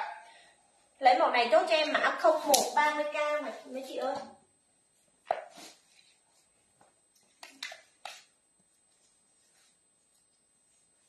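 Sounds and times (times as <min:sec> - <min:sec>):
satin fabric rustling: 0:04.8 - 0:11.0.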